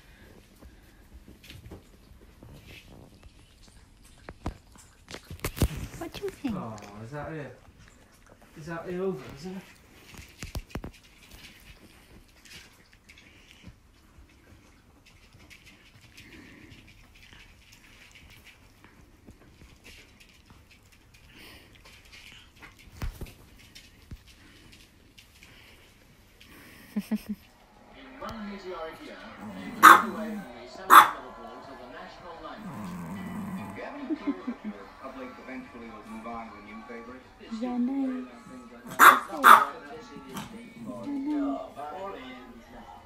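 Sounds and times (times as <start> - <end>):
small dog barking: 29.5 - 31.2, 38.9 - 39.8.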